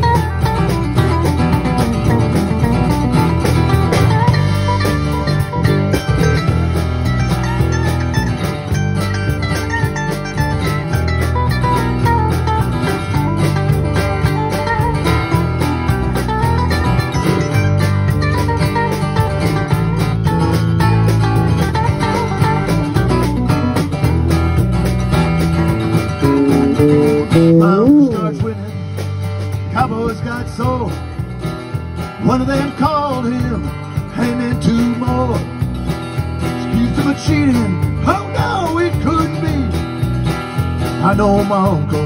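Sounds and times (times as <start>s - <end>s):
electric guitar lead lines: 0.0s - 42.0s
steady bass: 0.0s - 42.0s
strummed acoustic guitar: 0.0s - 42.0s.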